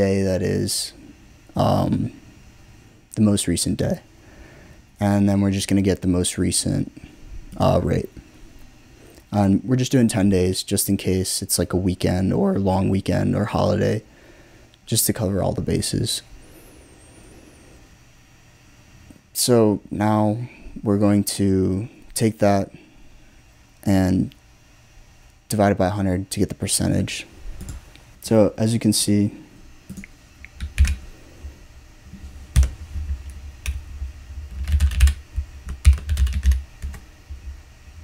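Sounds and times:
faint steady hiss: 0.0 - 38.0
typing on computer keyboard: 29.9 - 31.0, 34.5 - 37.0.

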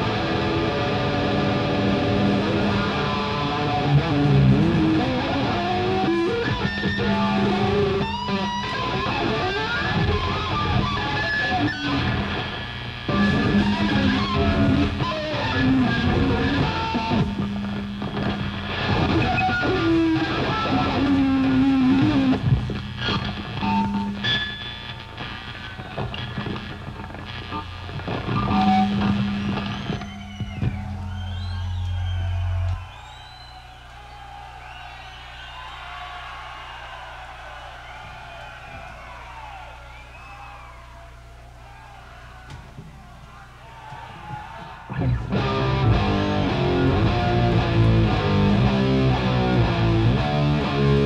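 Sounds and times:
heavy metal band playing live: 0.0 - 32.9, 44.9 - 51.0
high sliding guitar tones: 0.0 - 35.7, 44.9 - 51.0.

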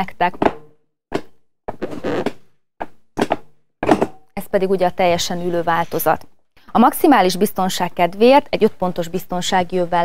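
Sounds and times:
creaking plastic slide: 1.7 - 2.4.

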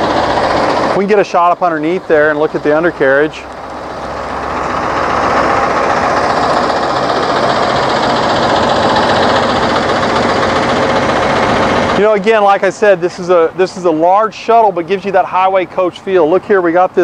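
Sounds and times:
diesel engine idling: 0.0 - 17.0.

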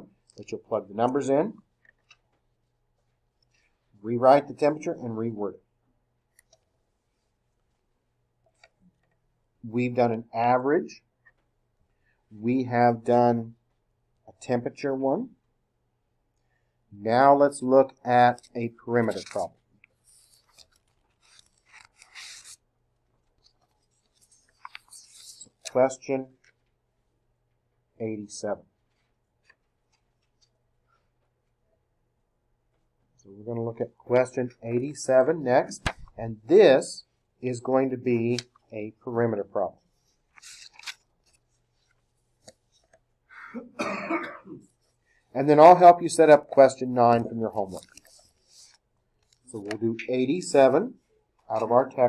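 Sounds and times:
paper rustling: 18.3 - 25.8, 35.7 - 36.2, 39.9 - 43.1, 47.1 - 49.8
man coughing: 43.4 - 44.7.

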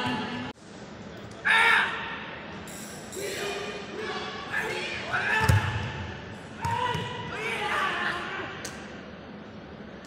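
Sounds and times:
crowd din in sports hall: 0.0 - 10.0.

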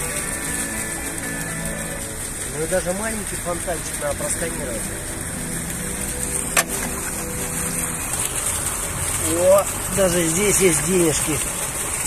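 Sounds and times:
fountain water splashing: 0.0 - 12.0.

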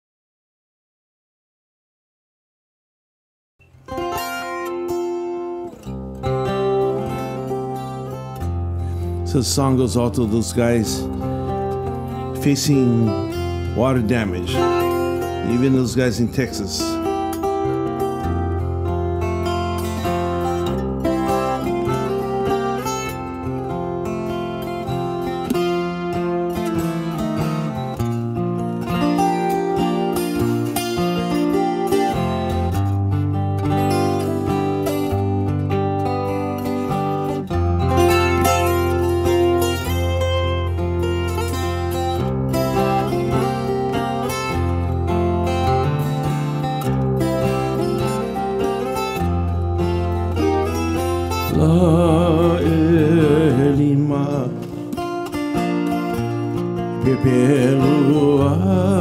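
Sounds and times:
acoustic guitar picked melody: 3.6 - 59.0.

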